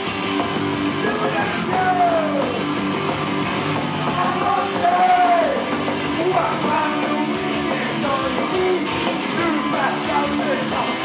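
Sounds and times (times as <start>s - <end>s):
punk band playing live: 0.0s - 11.0s
person singing: 4.1s - 11.0s.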